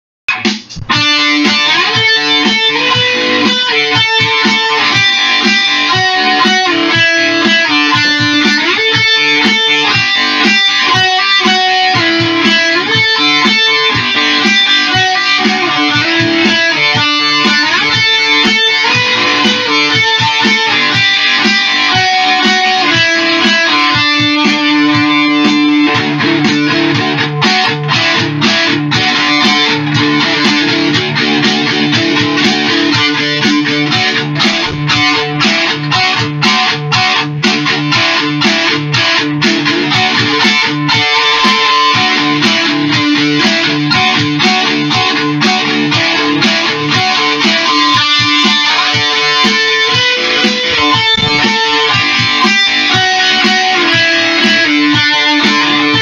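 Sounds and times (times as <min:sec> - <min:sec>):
electric guitar rock riff: 0:00.3 - 0:56.0.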